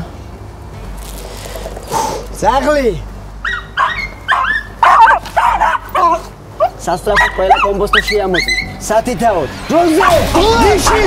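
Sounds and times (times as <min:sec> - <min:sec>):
dog-like barks and yelps: 0:03.4 - 0:08.8
voices: 0:03.7 - 0:11.0.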